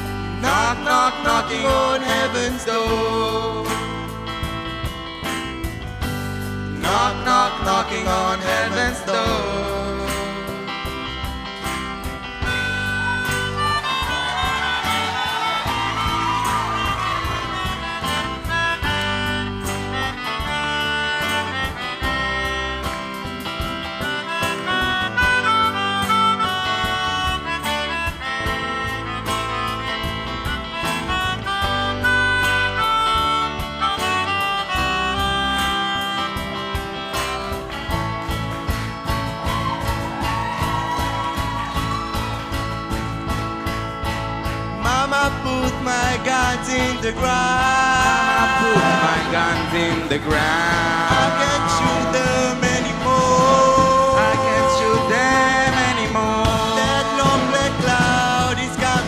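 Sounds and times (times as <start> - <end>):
acoustic guitars: 0.0 - 59.0
drums: 0.0 - 59.0
melodica melody: 12.1 - 38.1, 44.8 - 59.0.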